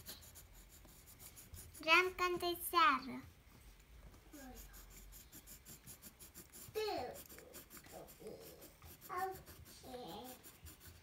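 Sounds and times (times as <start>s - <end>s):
pencil scratching on paper: 0.0s - 2.4s, 4.3s - 11.0s
child murmuring: 6.7s - 10.6s.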